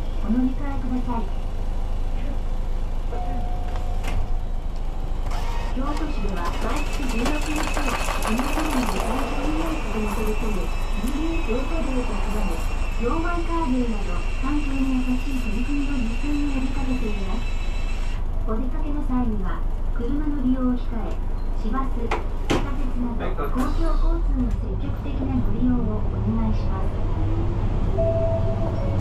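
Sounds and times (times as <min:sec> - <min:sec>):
bus engine droning: 0:00.0 - 0:29.0
recorded announcement voice: 0:00.2 - 0:01.4, 0:05.7 - 0:17.6, 0:18.4 - 0:27.1.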